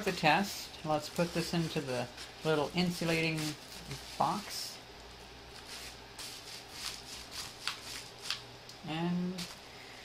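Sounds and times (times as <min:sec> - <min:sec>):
paper and foil crinkling: 0:00.0 - 0:04.7, 0:05.5 - 0:08.5.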